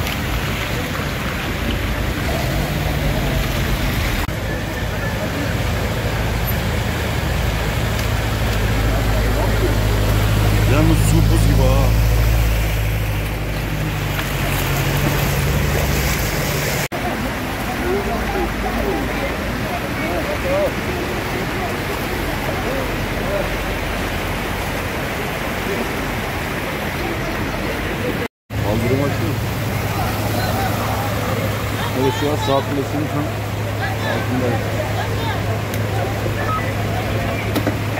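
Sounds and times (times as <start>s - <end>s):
floodwater rushing and splashing: 0.0s - 37.9s
voices talking: 0.7s - 37.9s.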